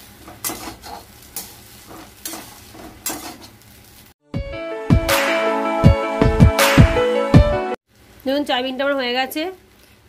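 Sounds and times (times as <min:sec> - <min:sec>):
frying sizzle: 0:00.0 - 0:04.2, 0:07.9 - 0:10.0
spatula scraping steel wok: 0:00.2 - 0:03.6.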